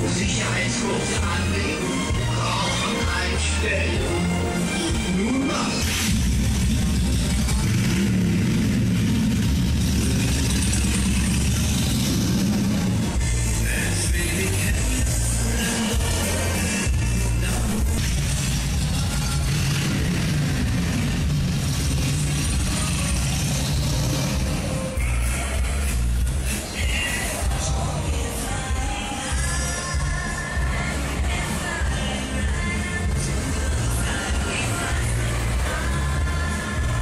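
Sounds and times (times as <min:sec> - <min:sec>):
loud fairground music with bass: 0:00.0 - 0:37.0
ride mechanical rumble: 0:00.0 - 0:37.0.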